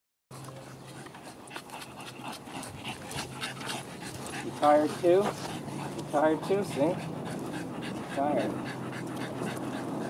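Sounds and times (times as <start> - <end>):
puppy panting: 0.4 - 10.0.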